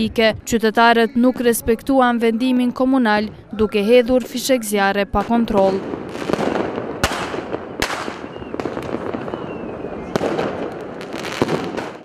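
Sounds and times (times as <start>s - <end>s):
fireworks crackling and banging: 5.2s - 12.0s
faint descending whistle: 9.2s - 10.2s.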